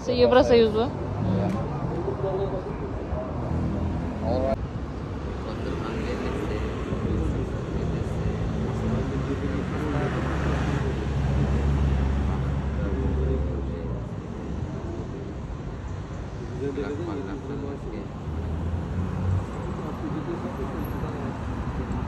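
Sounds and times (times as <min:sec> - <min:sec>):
people's voices: 0:00.0 - 0:04.6, 0:05.2 - 0:22.0.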